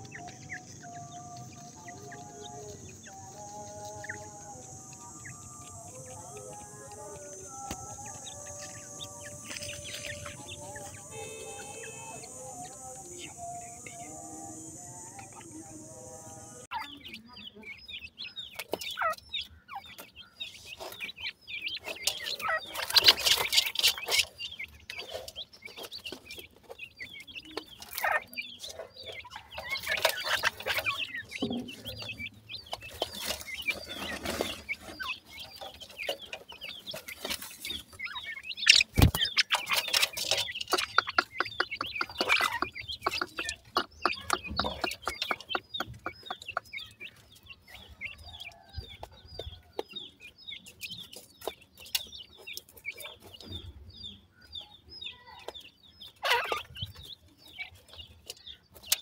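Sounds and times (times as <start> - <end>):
rustling and scratching in soil: 0.0 - 16.6, 18.6 - 54.4
chicks chirping and peeping: 0.0 - 59.0.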